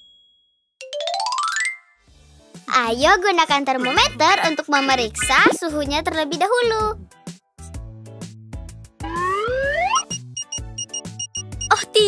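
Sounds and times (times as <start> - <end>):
children's background music: 0.9 - 12.0
rising whistle: 9.0 - 10.2
rapid high electronic beeping: 9.0 - 11.8.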